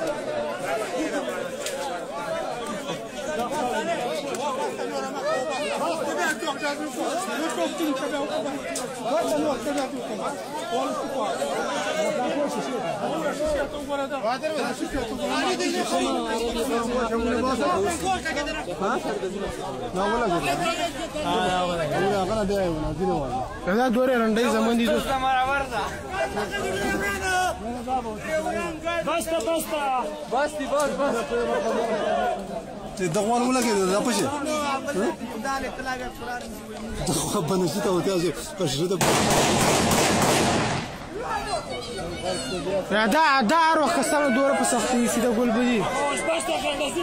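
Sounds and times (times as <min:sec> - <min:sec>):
overlapping voices chattering: 0:00.0 - 0:47.0
people talking: 0:00.0 - 0:47.0.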